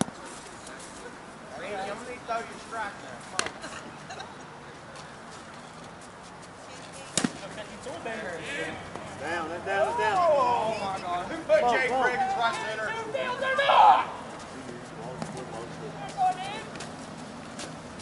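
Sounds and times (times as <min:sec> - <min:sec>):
players shouting: 0:09.5 - 0:14.4, 0:16.0 - 0:16.7.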